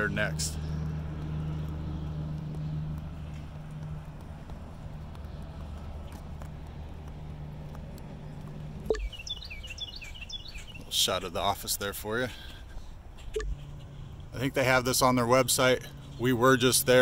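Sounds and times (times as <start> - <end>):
birds chirping: 0.0 - 17.0
vehicle engine humming: 0.0 - 17.0.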